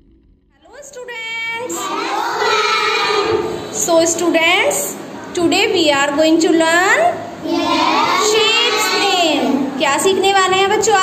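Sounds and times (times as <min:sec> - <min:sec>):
children calling out in unison: 0:01.7 - 0:03.8, 0:07.4 - 0:09.8.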